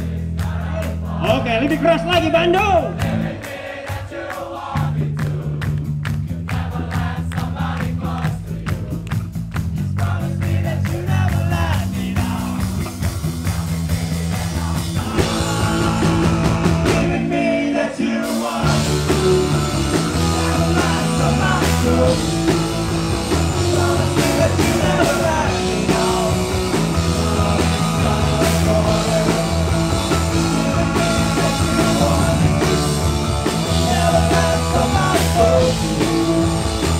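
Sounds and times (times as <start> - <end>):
live rock band playing: 5.3 - 17.5, 18.2 - 36.9
singing: 13.5 - 36.9.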